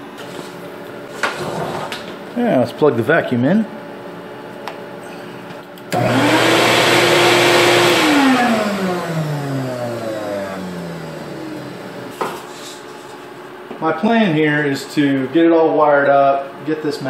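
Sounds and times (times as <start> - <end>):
shop vacuum motor whine: 5.8 - 12.4.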